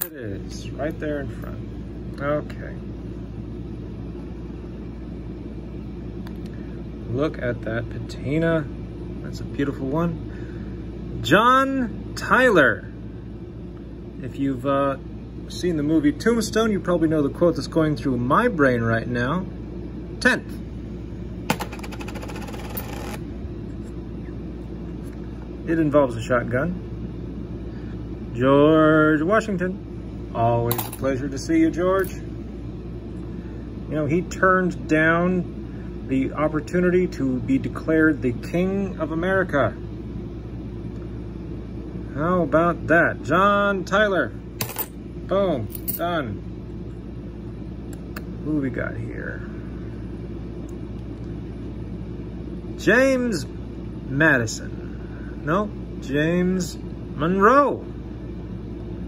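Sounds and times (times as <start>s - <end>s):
low steady hum: 0.0s - 59.0s
coin rattling in plastic box: 21.5s - 23.2s.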